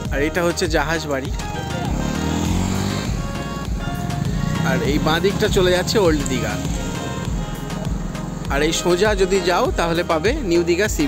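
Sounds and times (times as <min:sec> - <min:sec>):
background music: 0:00.0 - 0:11.0
motorcycle passing by: 0:01.2 - 0:09.8.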